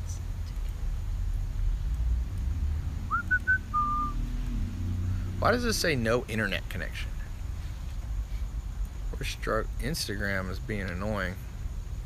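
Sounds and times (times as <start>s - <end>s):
person whistling: 3.1s - 4.2s.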